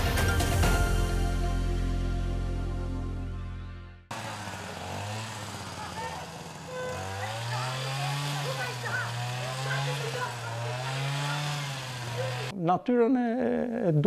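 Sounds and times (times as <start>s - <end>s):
small engine running: 4.1s - 12.5s
street noise: 4.1s - 12.5s.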